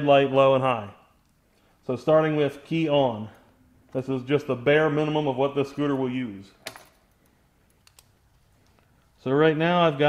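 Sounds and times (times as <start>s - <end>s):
faint clicks: 7.1s - 9.1s.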